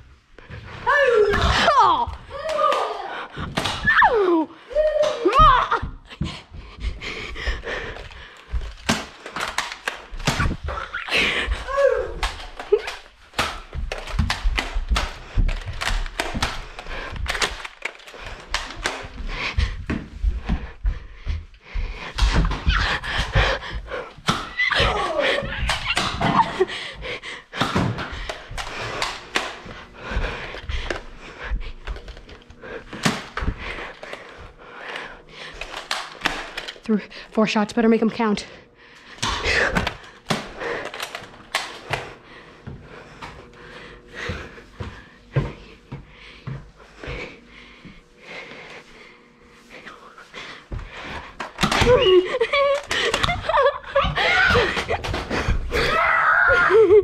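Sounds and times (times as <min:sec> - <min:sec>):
footsteps on hardwood floor: 0:04.7 - 0:37.0, 0:37.8 - 0:55.8.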